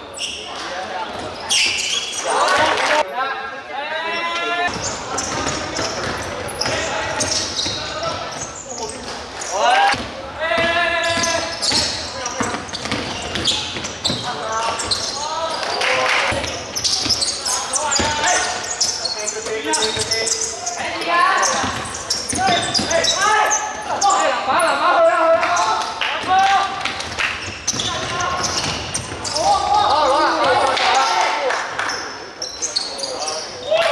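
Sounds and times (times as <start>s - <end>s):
basketball bouncing on court: 4.7s - 8.4s, 9.9s - 15.1s, 26.2s - 29.3s
people shouting in a hall: 9.4s - 11.5s, 29.2s - 31.6s, 33.6s - 33.9s.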